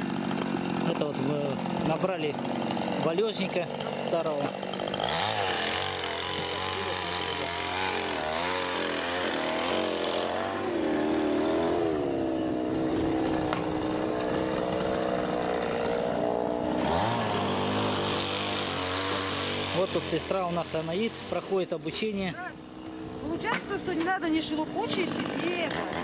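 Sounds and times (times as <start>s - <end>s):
chainsaw running: 0.0s - 26.0s.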